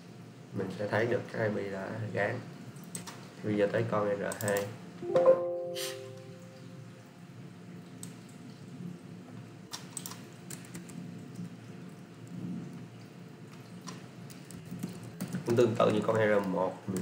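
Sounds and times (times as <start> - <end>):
computer keyboard keystrokes: 2.9 - 3.2, 4.3 - 4.7, 9.7 - 11.0.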